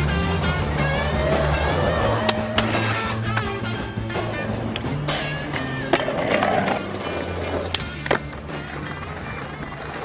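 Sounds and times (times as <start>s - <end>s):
background music: 0.0s - 10.0s
skateboard clacks: 0.0s - 10.0s
skateboard wheels rolling on concrete: 0.0s - 10.0s.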